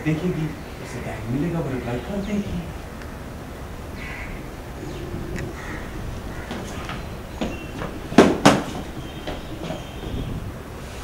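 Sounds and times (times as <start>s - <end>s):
faint knocks: 6.3s - 10.3s.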